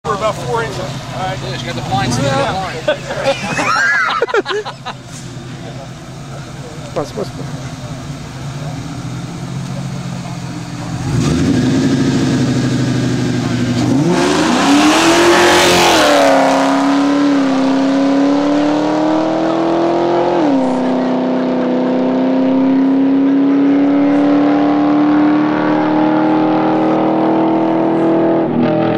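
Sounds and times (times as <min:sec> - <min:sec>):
cars accelerating hard: 0:00.1 - 0:28.9.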